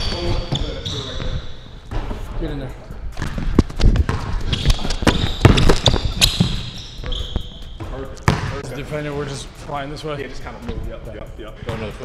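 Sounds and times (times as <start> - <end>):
sneakers squeaking on hardwood: 0.0 - 2.3, 3.2 - 8.6
basketball bouncing: 3.2 - 8.6.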